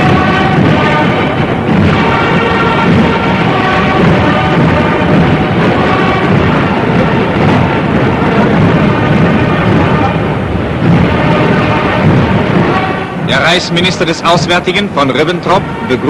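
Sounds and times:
newsreel music: 0.0 - 16.0
steam train rumble and hiss: 0.0 - 16.0.

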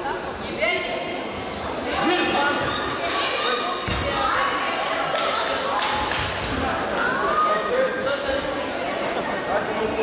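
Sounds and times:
voices shouting in echoing hall: 1.6 - 9.6.

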